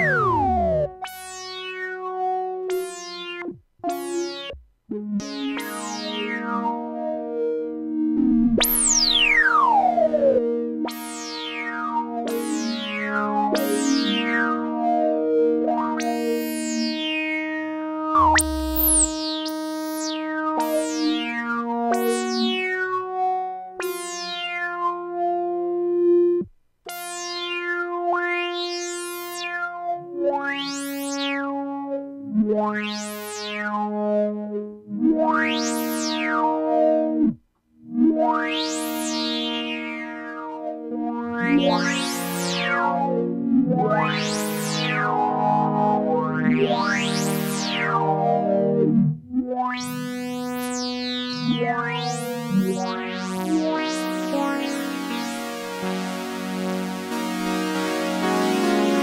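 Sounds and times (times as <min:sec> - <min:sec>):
synthesizer chords with filter sweeps: 0:00.0 - 0:01.8, 0:18.0 - 0:22.7, 0:38.1 - 0:59.0.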